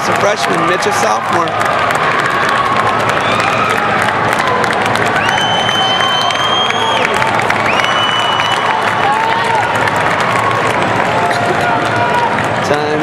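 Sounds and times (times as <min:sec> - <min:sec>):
crowd cheering and applauding: 0:00.0 - 0:13.0
high whistle-like tone: 0:05.2 - 0:07.1, 0:07.7 - 0:08.7.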